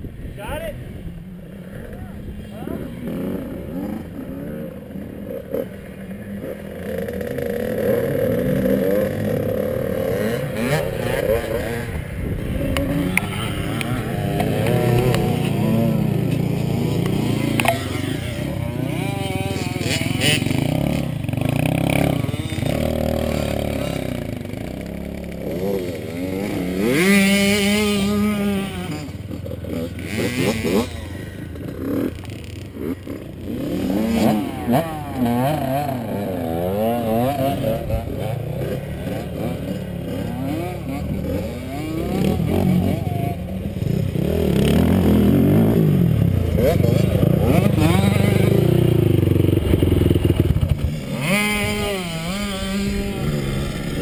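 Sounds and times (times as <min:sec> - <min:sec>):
motorcycle engines revving: 0:00.0 - 0:54.0
engine revving loudly close by: 0:06.9 - 0:31.3, 0:32.8 - 0:54.0.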